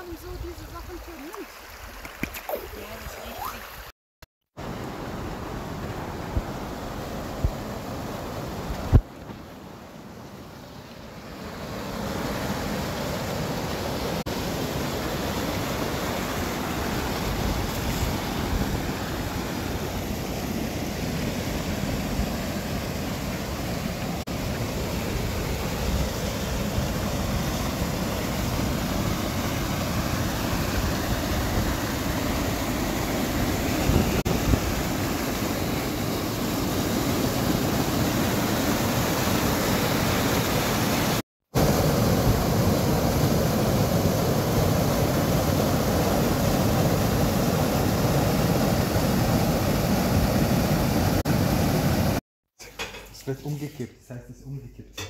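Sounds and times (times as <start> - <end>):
stream rushing over rocks: 0.0 - 3.9, 4.6 - 52.2.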